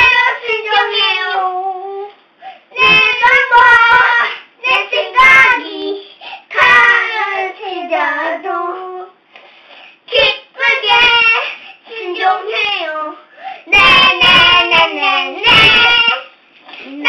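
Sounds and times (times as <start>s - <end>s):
children singing: 13.7s - 17.0s.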